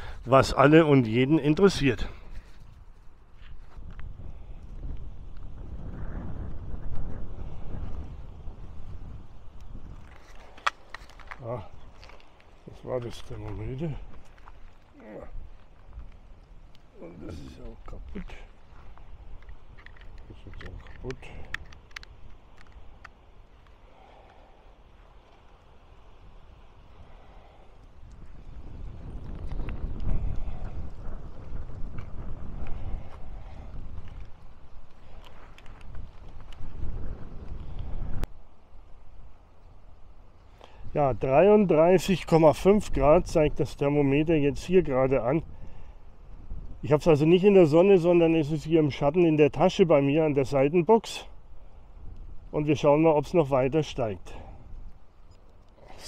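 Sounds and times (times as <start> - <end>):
wind rumble on microphone: 0.0 - 56.0
bicycle clicks and rattles: 19.3 - 23.2.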